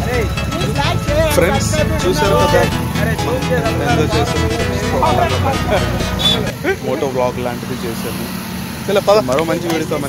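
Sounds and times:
motor scooters running: 0.0s - 10.0s
voices talking: 0.0s - 10.0s.

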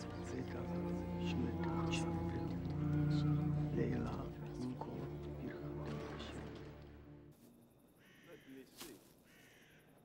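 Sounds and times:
crows cawing faintly: 7.9s - 10.0s.

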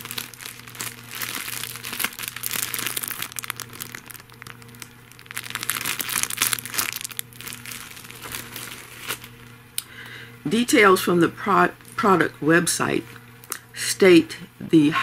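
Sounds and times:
plastic bag crinkling: 0.0s - 9.4s.

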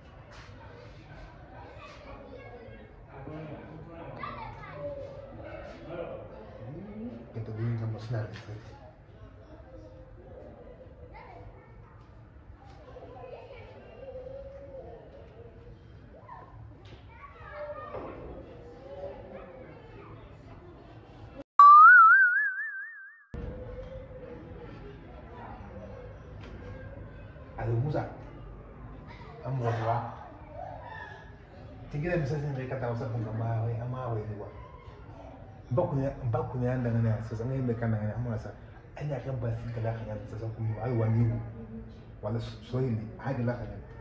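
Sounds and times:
cartoon boing: 21.6s - 23.2s.

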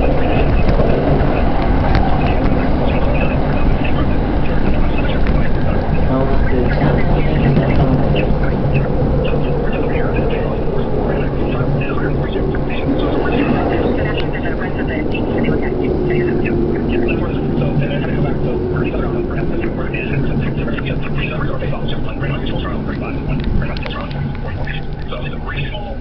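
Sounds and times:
indistinct voices: 0.0s - 26.0s
train wheels and motors rumbling: 0.0s - 26.0s.

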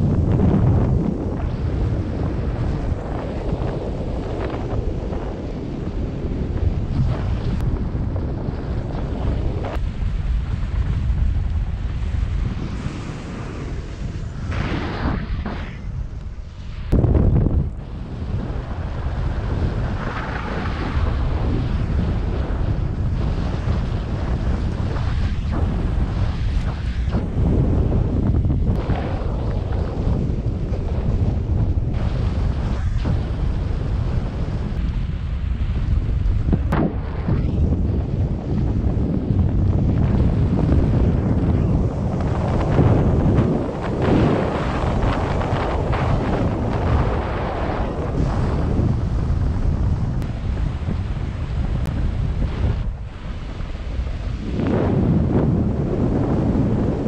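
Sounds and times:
wind rumbling over microphone: 0.0s - 57.0s.

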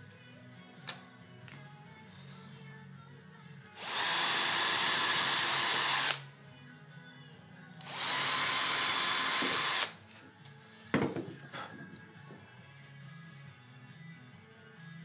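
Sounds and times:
power drill boring into plywood: 3.8s - 6.2s, 7.8s - 10.0s.

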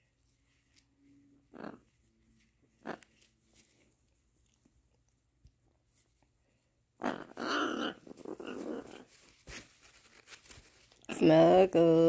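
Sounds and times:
parrot raspy growl: 1.5s - 1.8s, 2.8s - 3.1s, 7.0s - 9.1s.

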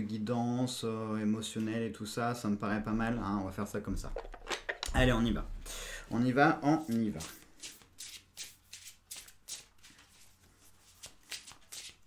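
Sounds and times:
cards shuffled by hand: 6.8s - 12.0s.

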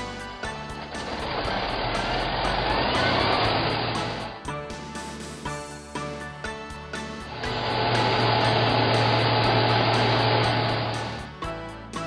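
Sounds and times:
truck engine rumble: 0.0s - 4.5s, 7.2s - 11.5s
background music: 0.0s - 12.0s.

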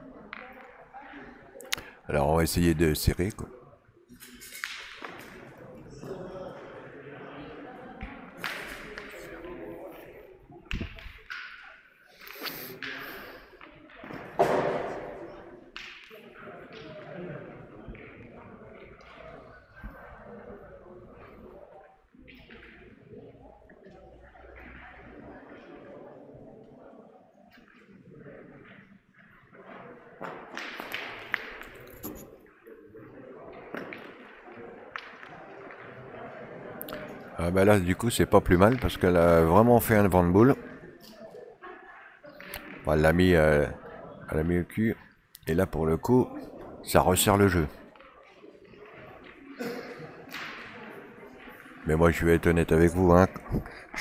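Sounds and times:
murmur of voices in a hall: 0.0s - 54.0s.

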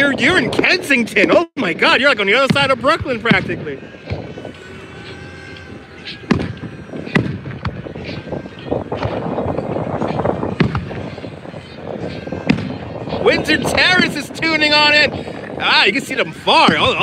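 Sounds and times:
continuous rushing noise: 0.0s - 17.0s.

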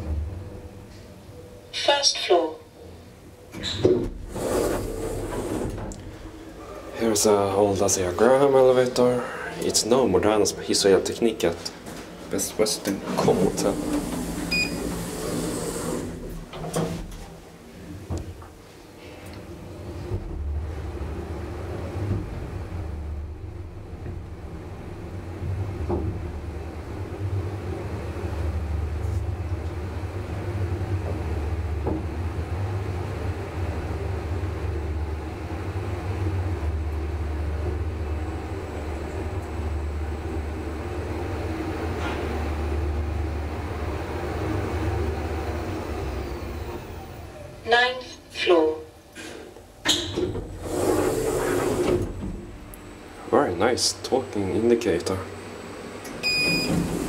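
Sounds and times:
elevator travelling hum: 0.0s - 57.0s
elevator clatter: 12.6s - 17.4s, 19.6s - 47.1s, 49.8s - 53.3s, 56.0s - 57.0s
elevator beep: 14.5s - 15.0s, 56.2s - 57.0s.

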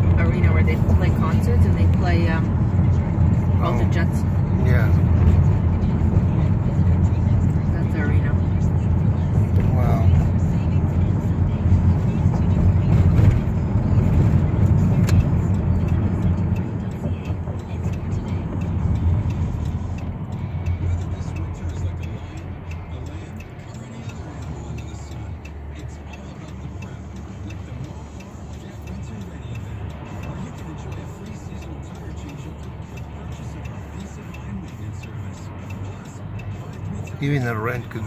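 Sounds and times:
car cabin road and engine rumble: 0.0s - 38.0s.

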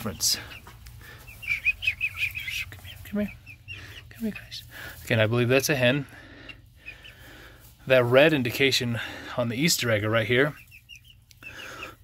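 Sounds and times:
man speaking: 0.0s - 0.6s, 4.2s - 6.1s, 7.8s - 10.6s
chicks chirping faintly: 0.0s - 12.0s
chicks moving on straw: 0.0s - 12.0s.

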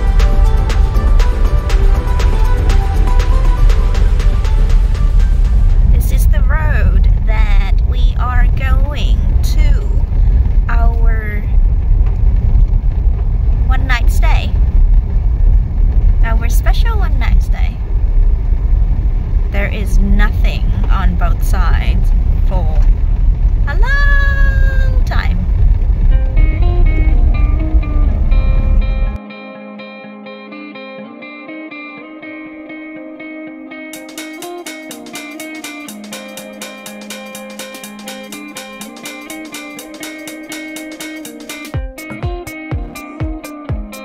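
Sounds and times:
music with plucked notes: 0.0s - 6.0s, 26.0s - 44.0s
car driving on gravel road: 11.5s - 16.9s, 17.6s - 23.8s, 25.2s - 29.1s.

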